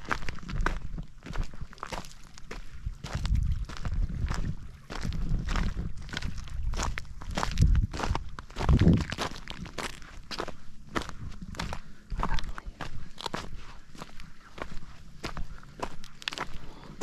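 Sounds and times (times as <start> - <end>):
footsteps crunching on stones: 0.0 - 17.0.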